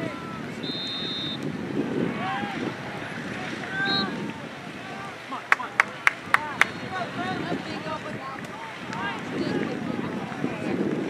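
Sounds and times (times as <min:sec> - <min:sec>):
distant shouts and calls: 0:00.0 - 0:10.5
wind rumbling on microphone: 0:00.0 - 0:11.0.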